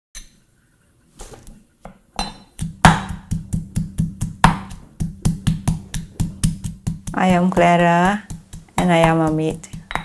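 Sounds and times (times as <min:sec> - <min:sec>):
knife chopping on cutting board: 0:01.8 - 0:10.0
low steady hum: 0:02.2 - 0:10.0.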